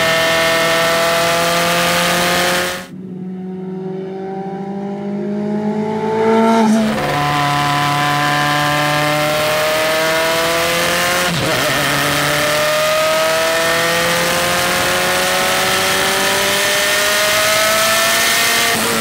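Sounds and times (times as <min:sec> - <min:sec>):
race car engine accelerating: 0:00.0 - 0:19.0.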